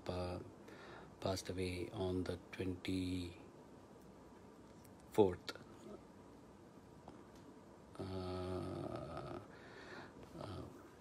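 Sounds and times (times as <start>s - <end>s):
man saying uhh: 7.9s - 9.5s.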